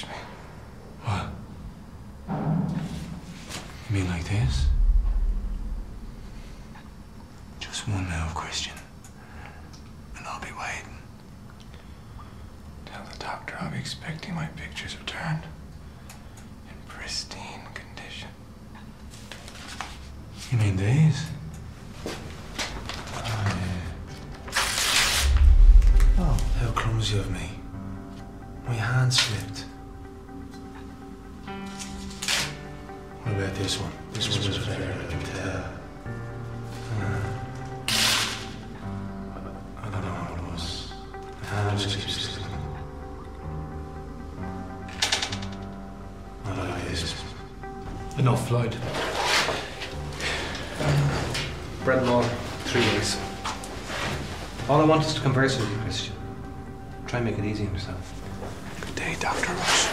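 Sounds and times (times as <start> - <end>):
low steady hum: 0.0 - 13.9, 24.3 - 31.6
low dark film-score music: 0.0 - 59.9
man whispering: 10.2 - 11.1, 12.8 - 15.6, 16.7 - 18.4, 58.8 - 59.9
photograph ripping: 24.5 - 25.3, 37.9 - 38.5.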